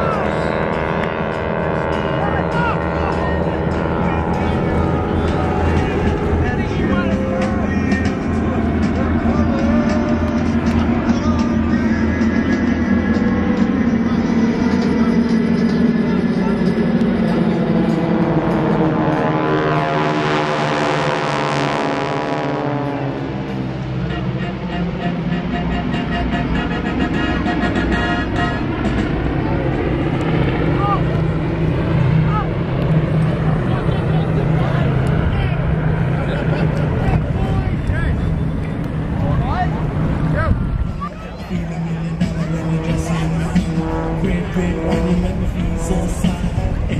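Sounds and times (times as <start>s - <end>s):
propeller planes droning overhead: 0.0s - 46.9s.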